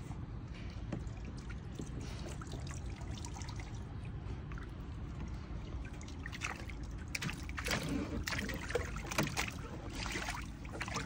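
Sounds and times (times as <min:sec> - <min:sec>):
low steady rumble: 0:00.0 - 0:11.0
water trickling in a pool: 0:00.6 - 0:11.0.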